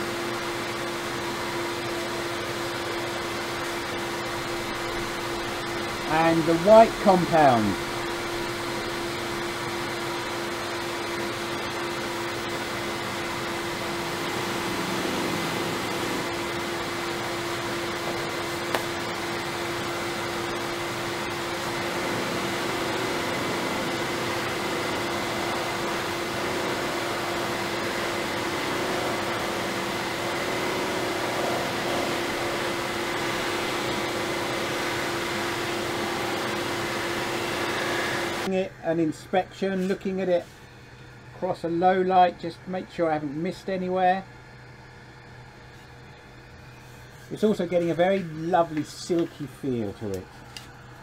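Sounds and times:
lathe humming and whirring: 0:00.0 - 0:51.0.

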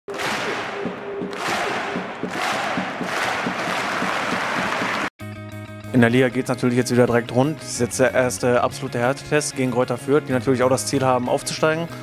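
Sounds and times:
stadium crowd cheering and chanting: 0:00.1 - 0:05.1
jingle music: 0:05.2 - 0:09.2.

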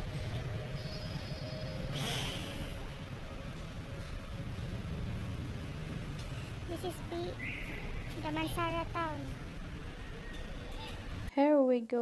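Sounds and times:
road traffic rumble: 0:00.0 - 0:11.3
brief hiss: 0:01.9 - 0:02.8.

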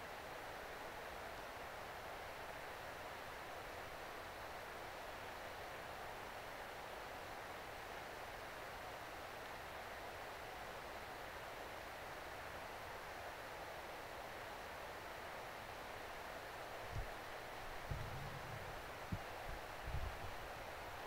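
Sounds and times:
steady outdoor hiss: 0:00.0 - 0:21.0.

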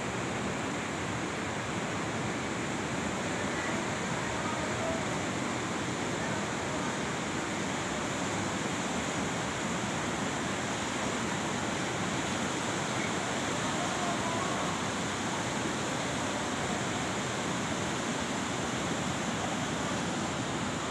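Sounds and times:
mountain river rushing over rapids: 0:00.0 - 0:20.9.

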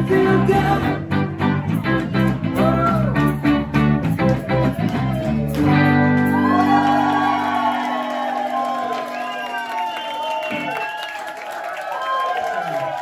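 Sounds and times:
bass guitar: 0:00.0 - 0:08.7
electric guitars: 0:00.0 - 0:10.8.

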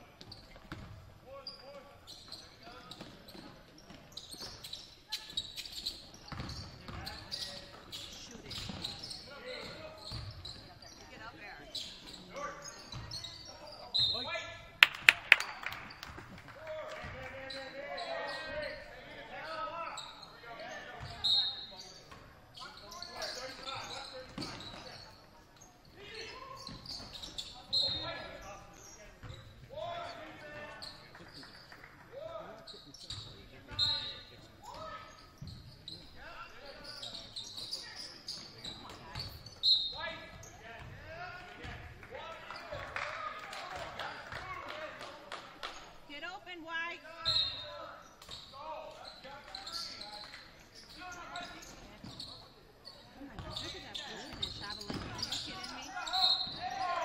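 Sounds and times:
sneaker squeaks: 0:00.0 - 0:14.7, 0:17.0 - 0:31.8, 0:32.5 - 0:42.8, 0:45.7 - 0:57.0
basketball bouncing on court: 0:00.2 - 0:01.1, 0:06.2 - 0:07.8, 0:08.5 - 0:10.8, 0:40.2 - 0:41.0, 0:53.3 - 0:56.6.

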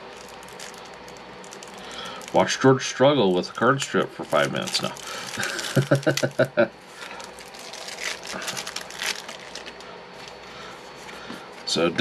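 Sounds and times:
card wrapping crinkling and tearing: 0:00.0 - 0:02.6, 0:03.3 - 0:10.4
person muttering or laughing: 0:05.4 - 0:06.7.

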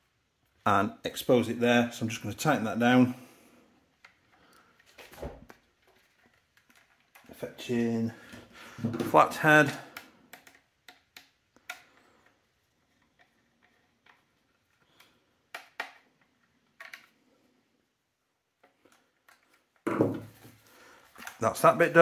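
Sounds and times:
screwdriver clicks and taps: 0:09.9 - 0:12.3, 0:15.5 - 0:16.1.

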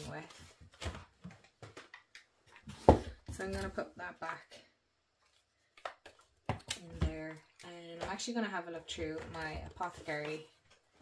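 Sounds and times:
woman speaking: 0:00.0 - 0:00.4, 0:03.3 - 0:04.7, 0:06.7 - 0:10.6.

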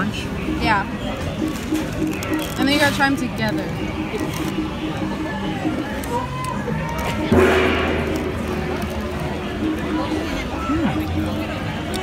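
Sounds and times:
background music: 0:00.0 - 0:12.0
crowd chattering: 0:00.0 - 0:12.0
held low note: 0:07.3 - 0:11.7.

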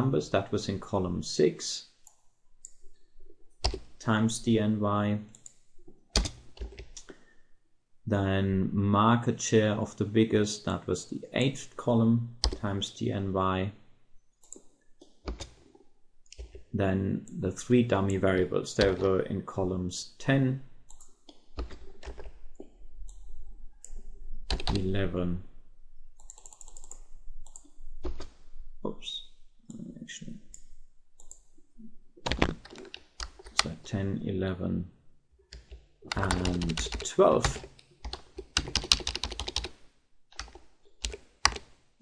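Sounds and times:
computer keyboard keystrokes: 0:06.2 - 0:07.1, 0:24.5 - 0:24.8, 0:32.2 - 0:33.7, 0:35.5 - 0:39.8, 0:40.4 - 0:41.7.

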